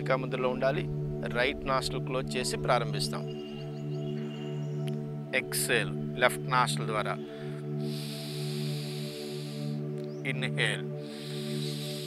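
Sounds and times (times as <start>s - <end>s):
ambient drone music: 0.0s - 12.0s
slow breath out through nose: 7.2s - 10.1s, 11.0s - 12.0s.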